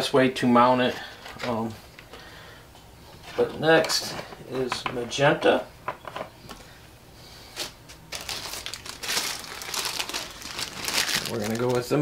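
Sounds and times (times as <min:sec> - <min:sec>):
plastic bag crinkling: 0:07.6 - 0:12.0.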